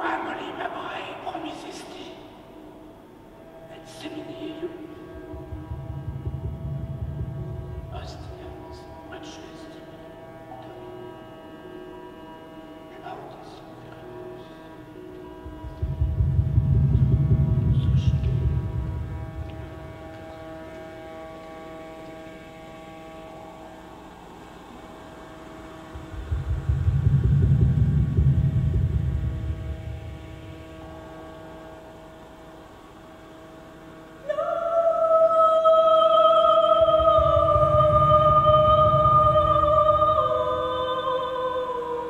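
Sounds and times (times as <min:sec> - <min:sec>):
electronic drone: 0:00.0 - 0:42.0
deep low rumble: 0:04.9 - 0:09.1, 0:15.0 - 0:22.0, 0:25.2 - 0:31.8, 0:36.8 - 0:40.6.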